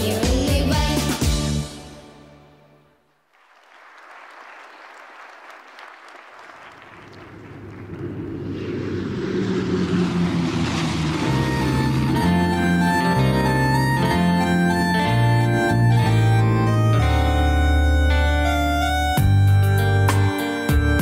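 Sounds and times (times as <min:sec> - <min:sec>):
applause: 0:03.2 - 0:08.1
propeller aircraft engine drone: 0:07.0 - 0:20.1
song with organ-like chords: 0:11.2 - 0:21.0.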